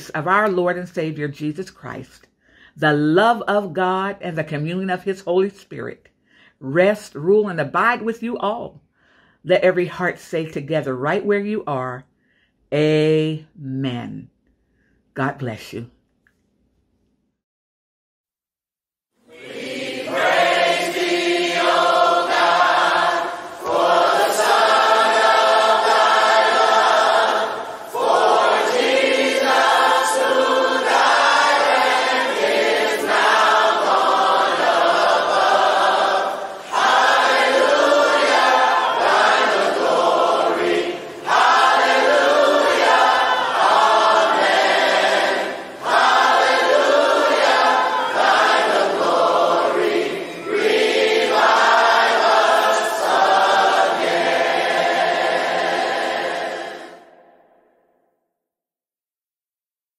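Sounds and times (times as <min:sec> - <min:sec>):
church choir singing: 0:19.3 - 0:57.7.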